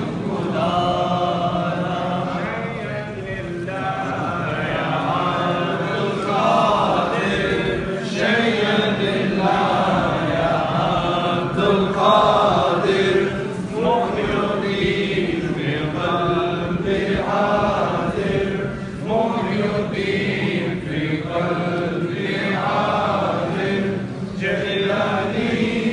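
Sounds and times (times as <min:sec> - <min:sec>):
men chanting in unison: 0:00.0 - 0:25.9.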